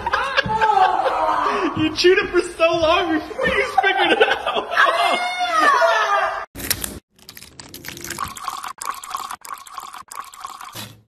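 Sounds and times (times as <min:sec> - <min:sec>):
liquid pouring and splashing: 0:06.6 - 0:11.0.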